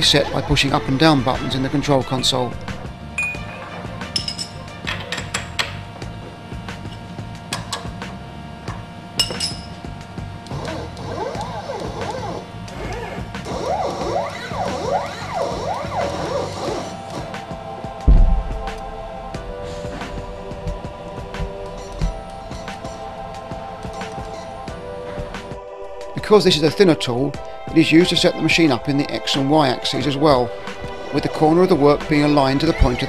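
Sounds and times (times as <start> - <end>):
background music: 0.0 - 33.0
metallic clinks and knocks: 4.1 - 5.6
dull thump: 18.1 - 21.6.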